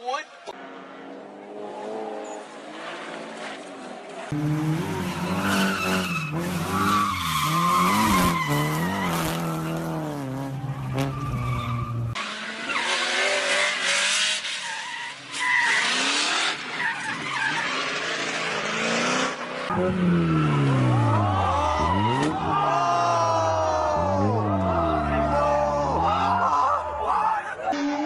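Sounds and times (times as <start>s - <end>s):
car engine revving: 0.6s - 14.4s, 17.6s - 27.0s.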